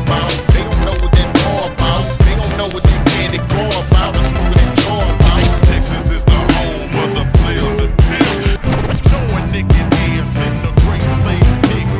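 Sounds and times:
hip hop drum beat: 0:00.0 - 0:11.9.

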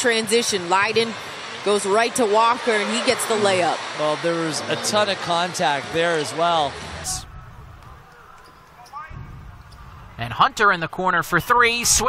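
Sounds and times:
low arena background noise: 0:00.0 - 0:12.0.

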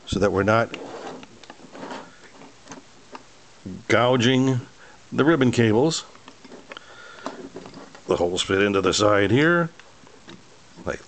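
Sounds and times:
metal case handling noise: 0:00.6 - 0:03.3, 0:06.1 - 0:09.0, 0:09.7 - 0:11.0.

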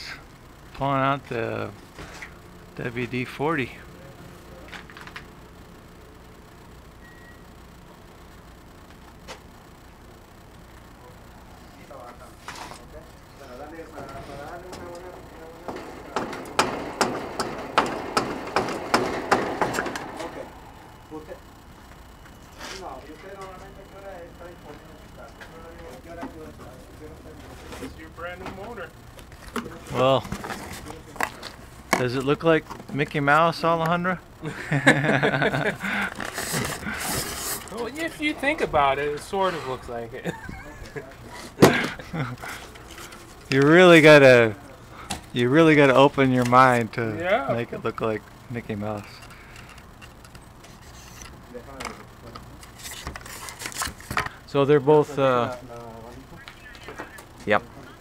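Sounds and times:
low voices murmuring: 0:10.8 - 0:31.8
sharp metal knocks: 0:15.7 - 0:20.3
person laughing: 0:34.4 - 0:37.0, 0:39.6 - 0:42.6.

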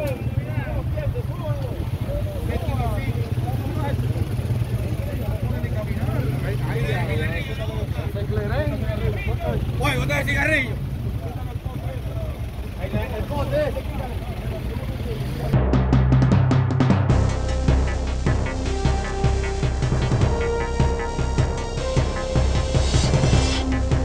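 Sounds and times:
low engine rumble: 0:00.0 - 0:24.0
people talking indistinctly: 0:00.0 - 0:24.0.

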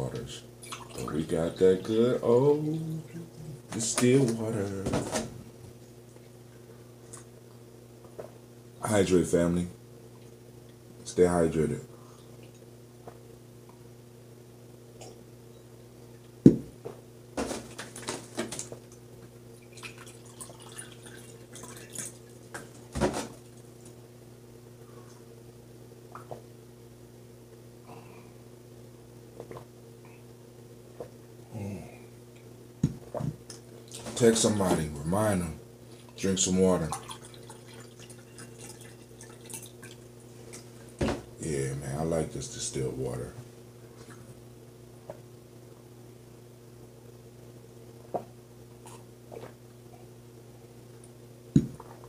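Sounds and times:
low steady hum: 0:00.0 - 0:52.0
water trickling into a glass: 0:19.6 - 0:22.0.

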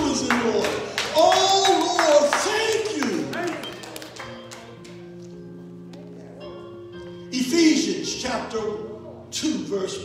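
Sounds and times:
keyboard playing soft held chords: 0:00.0 - 0:10.0.

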